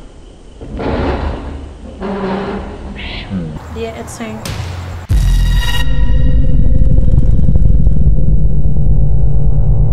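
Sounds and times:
deep rumble with flutter: 0:05.8 - 0:09.9.

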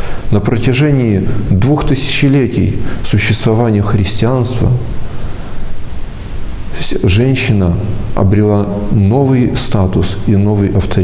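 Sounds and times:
man talking: 0:00.0 - 0:05.0, 0:06.7 - 0:11.0
background hiss: 0:00.0 - 0:11.0.

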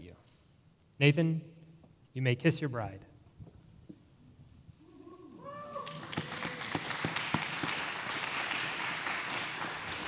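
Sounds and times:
people whooping and cheering: 0:05.0 - 0:07.2
applause: 0:05.8 - 0:10.0.

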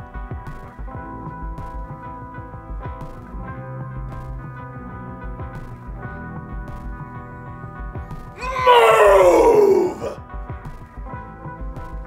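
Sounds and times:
person wailing: 0:08.4 - 0:10.2.

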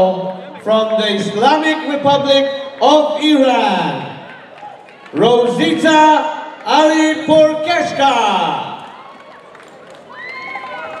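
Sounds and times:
announcer voice echoing: 0:00.0 - 0:04.2, 0:05.2 - 0:08.8
murmur of crowd in hall: 0:00.0 - 0:11.0.

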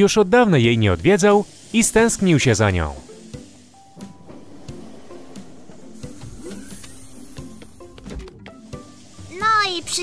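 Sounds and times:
soft background music: 0:00.0 - 0:10.0
train doors opening whirr and hiss: 0:02.8 - 0:09.5.

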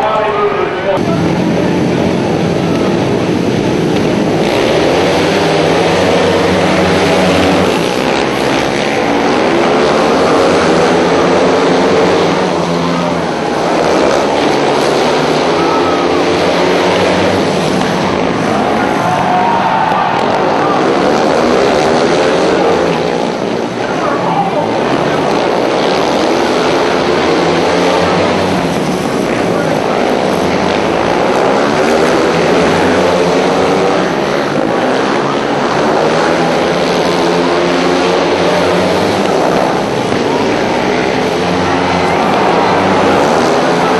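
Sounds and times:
motorcycle engines revving: 0:00.0 - 0:43.9.

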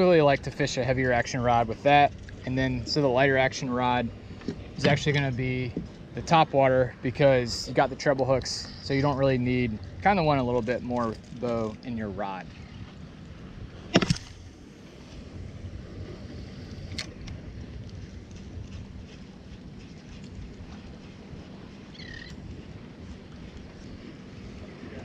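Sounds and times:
water around a boat: 0:00.0 - 0:25.0
wind buffeting microphone: 0:00.0 - 0:25.0.

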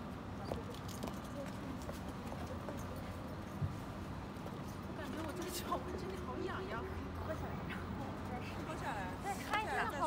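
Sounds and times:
low street hum: 0:00.0 - 0:10.0.

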